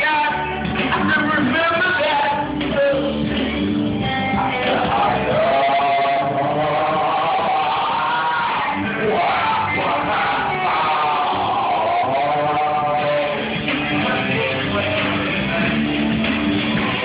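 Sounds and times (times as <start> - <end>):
man singing into a microphone: 0.0 - 3.4, 4.4 - 15.6
rock karaoke backing track: 0.0 - 17.0.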